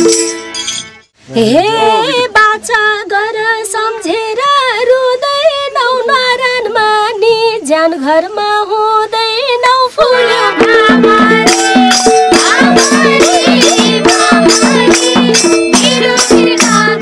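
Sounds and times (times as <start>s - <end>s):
woman singing: 1.4s - 17.0s
harmonium and hand drum band: 10.2s - 17.0s.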